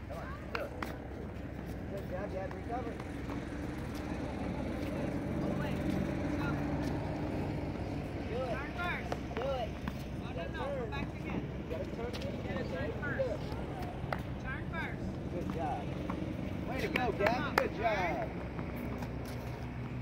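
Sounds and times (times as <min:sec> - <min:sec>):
low motor rumble: 0:00.0 - 0:20.0.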